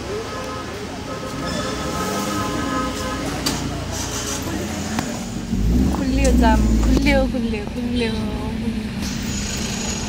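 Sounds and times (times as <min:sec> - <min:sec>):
voices talking: 0:00.0 - 0:09.0
road and engine rumble: 0:00.0 - 0:10.0.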